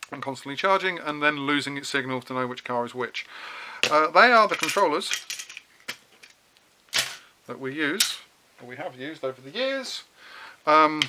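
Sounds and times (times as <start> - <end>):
plastic parts clicking and rattling: 3.8 - 7.2.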